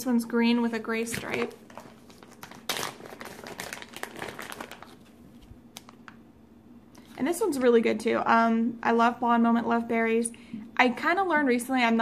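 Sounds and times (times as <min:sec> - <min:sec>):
plastic packaging crinkling: 0:00.8 - 0:06.2.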